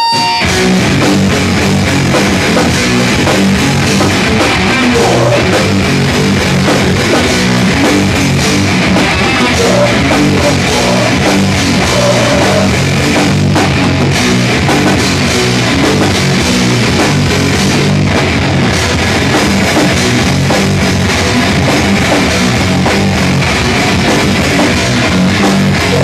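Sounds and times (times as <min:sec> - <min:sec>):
drum kit: 0:00.0 - 0:26.0
electric guitar: 0:00.0 - 0:26.0.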